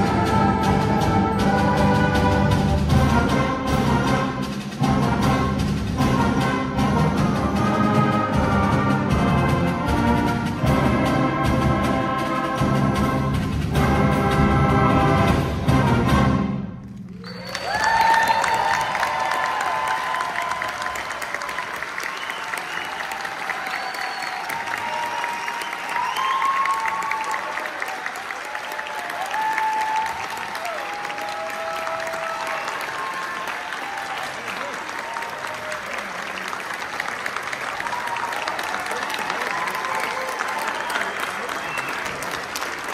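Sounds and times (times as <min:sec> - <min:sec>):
audience applauding and cheering: 0:16.9 - 0:42.9.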